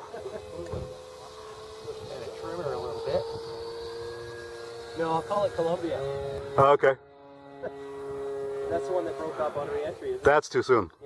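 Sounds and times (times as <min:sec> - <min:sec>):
electric ducted fan high whine: 0:00.0 - 0:10.8.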